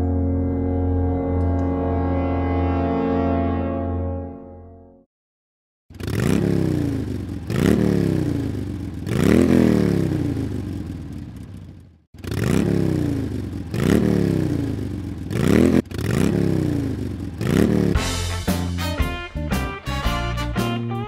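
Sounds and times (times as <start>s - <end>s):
engine revving: 5.9s - 18.9s.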